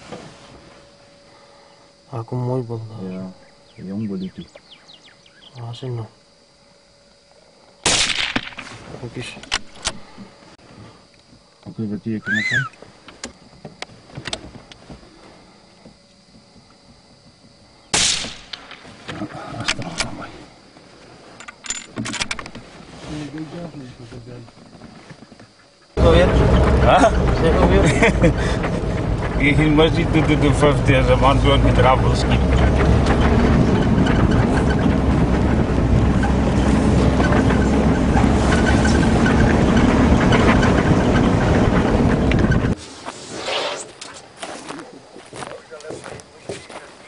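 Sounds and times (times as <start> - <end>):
wind: 0.0 - 47.0
rifle shot: 7.8 - 8.7, 17.9 - 18.8
off-road vehicle engine rumble: 8.7 - 42.8
vehicle body rattle: 26.0 - 42.8.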